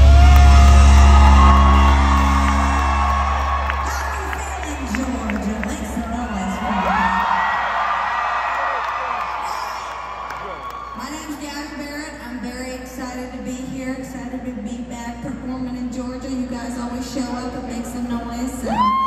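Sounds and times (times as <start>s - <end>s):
crowd whooping and cheering: 0.0s - 11.4s, 18.6s - 19.0s.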